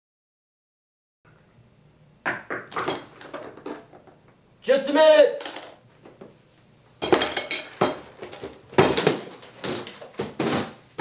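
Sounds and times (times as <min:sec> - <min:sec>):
hard objects clattering: 0:02.4 - 0:04.3, 0:05.4 - 0:06.2, 0:07.0 - 0:10.8.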